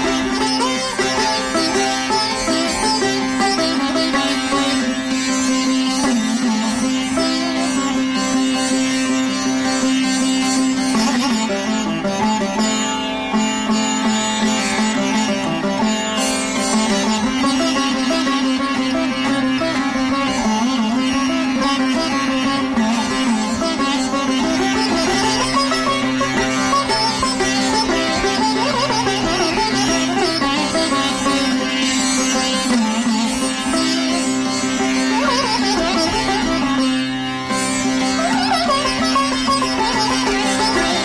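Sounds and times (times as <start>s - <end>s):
sitar melody over drone: 0.0s - 41.0s.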